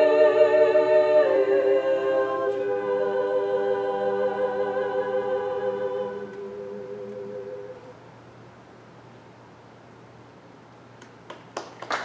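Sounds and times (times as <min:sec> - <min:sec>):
women's choir singing a cappella: 0:00.0 - 0:08.0.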